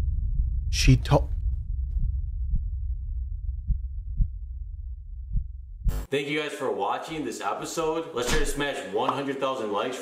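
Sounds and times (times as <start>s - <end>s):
heartbeat-like double thump: 0.0s - 6.1s
low dark rumbling drone: 0.0s - 6.1s.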